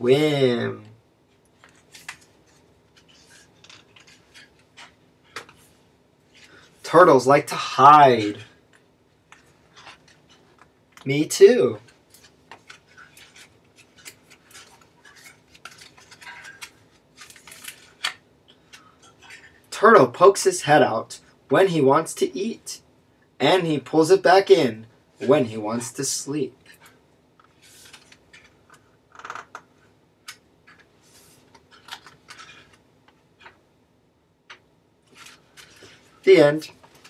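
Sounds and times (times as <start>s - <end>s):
book pages turning: 1.3s - 6.8s, 8.2s - 11.1s, 11.8s - 19.6s, 26.7s - 29.6s, 30.2s - 33.6s, 34.5s - 37.0s
papery rustle: 11.9s - 18.2s.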